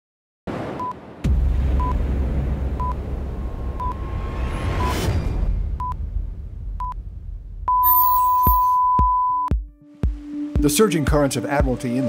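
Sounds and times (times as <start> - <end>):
countdown beeps: 7.7 - 9.6.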